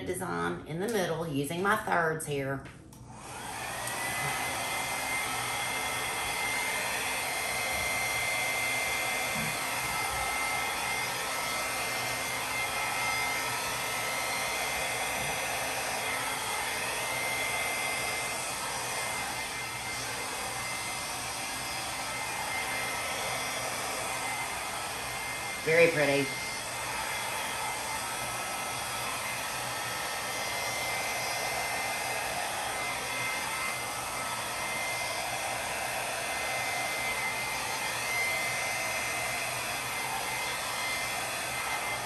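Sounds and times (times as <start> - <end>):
hair dryer blowing: 0.0 - 2.2, 2.9 - 42.0.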